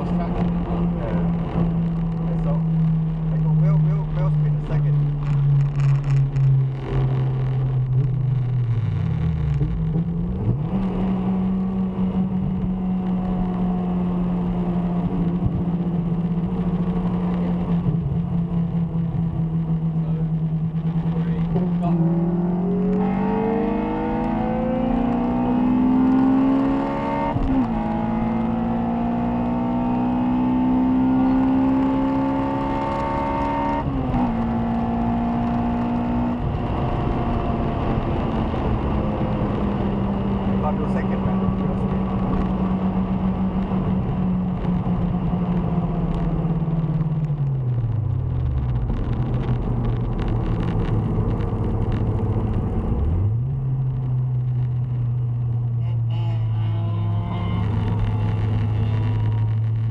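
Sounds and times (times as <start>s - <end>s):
car engine revving under acceleration: 0.0s - 59.9s.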